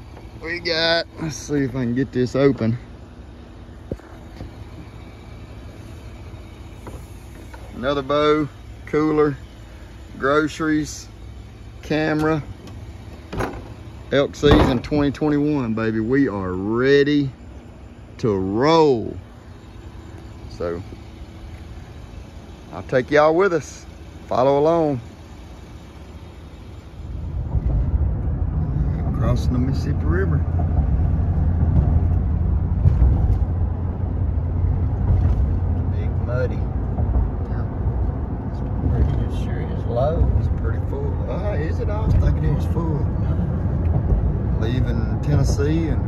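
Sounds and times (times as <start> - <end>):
faint outdoor ambience: 0.0 - 46.0
low engine rumble: 0.0 - 46.0.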